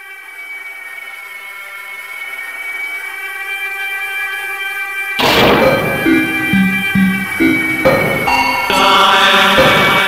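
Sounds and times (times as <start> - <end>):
synthesizer drone: 5.2 - 10.0.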